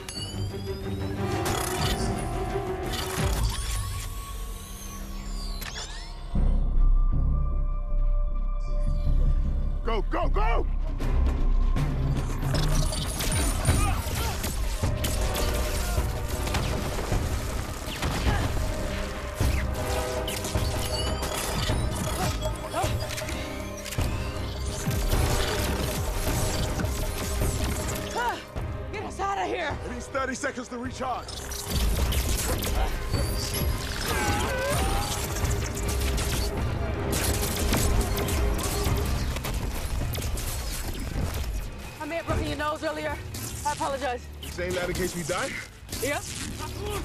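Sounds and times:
dramatic music score: 0:00.0 - 0:47.0.

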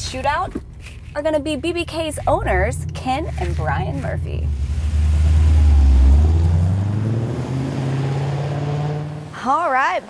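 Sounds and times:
woman's voice: 0:00.0 - 0:04.5, 0:09.4 - 0:10.0
car exhaust under throttle: 0:01.2 - 0:09.6.

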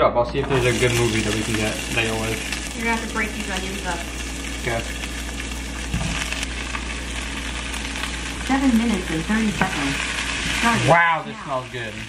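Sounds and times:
peppers sizzling in a frying pan: 0:00.4 - 0:12.0.

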